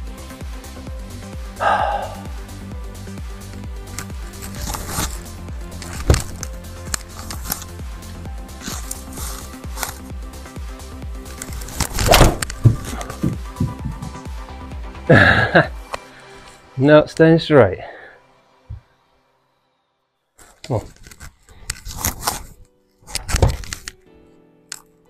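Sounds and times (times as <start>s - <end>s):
music with steady beat: 0.0s - 16.2s
sharp knocks: 11.9s - 14.3s.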